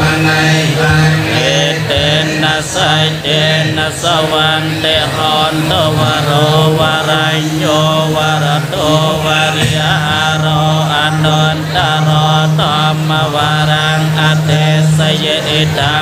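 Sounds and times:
monks chanting together: 0.0 - 16.0.

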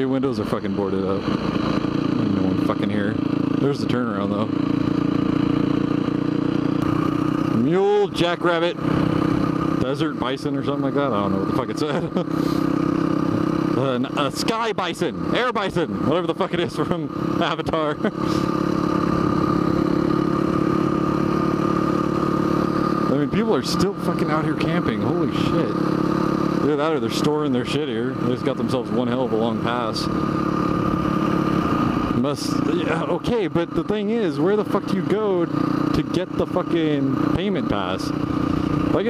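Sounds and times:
motorcycle engine cruising: 0.0 - 39.0.

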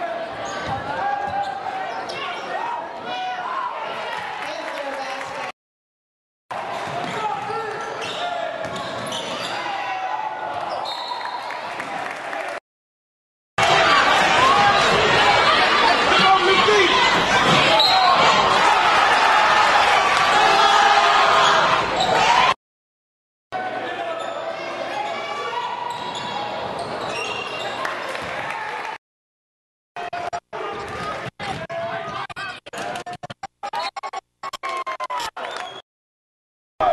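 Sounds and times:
crowd voices and shouts: 0.0 - 5.5, 6.5 - 12.6, 13.6 - 22.6, 23.5 - 29.0, 30.0 - 35.8
basketball bouncing on court: 8.6 - 9.2.

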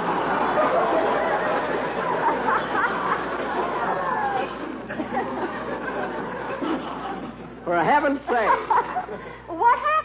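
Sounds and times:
studio audience laughing: 0.0 - 7.6, 8.2 - 9.5.

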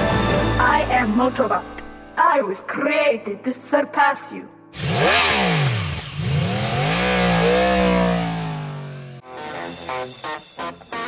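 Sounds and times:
engine revving: 4.8 - 9.2.

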